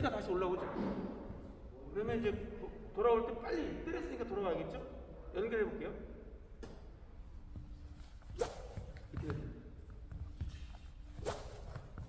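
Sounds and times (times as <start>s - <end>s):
faint shoe sounds on wooden floor: 7.5s - 12.0s
racket swish or shoe squeak: 8.0s - 9.3s, 11.0s - 12.0s.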